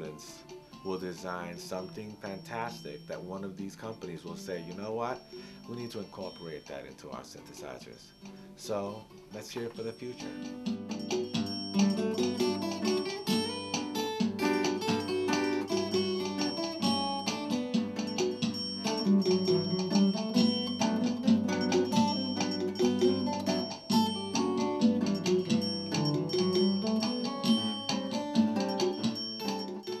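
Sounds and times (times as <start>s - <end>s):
acoustic and electric guitars playing: 0.0s - 30.0s.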